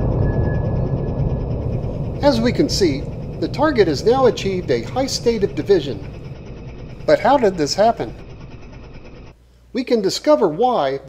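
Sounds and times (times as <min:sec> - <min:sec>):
low rumbling echo: 0:00.0 - 0:09.4
faint steady whine: 0:00.0 - 0:11.0.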